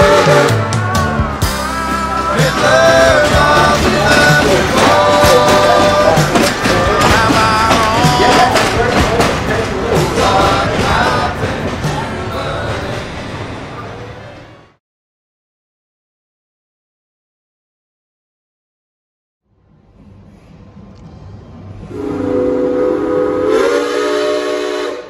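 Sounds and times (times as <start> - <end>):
background song music: 0.0 - 13.7.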